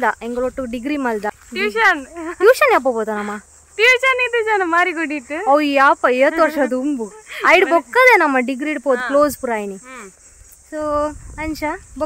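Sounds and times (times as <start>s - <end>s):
woman talking: 0.0s - 10.1s
insects chirring: 0.0s - 12.0s.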